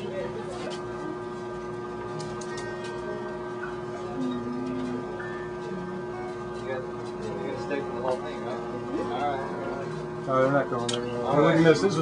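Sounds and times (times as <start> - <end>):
steady humming tone: 0.0 - 12.0.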